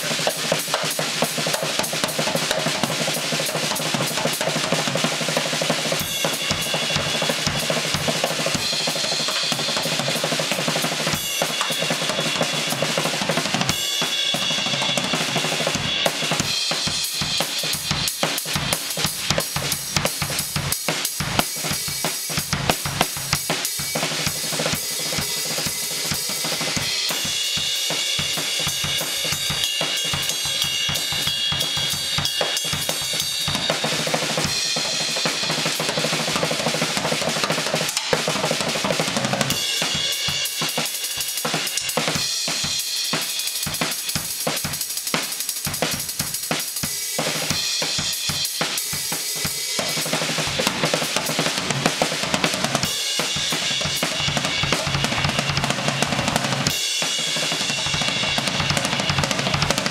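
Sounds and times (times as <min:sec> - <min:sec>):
drum kit solo: 0:00.0 - 0:59.9.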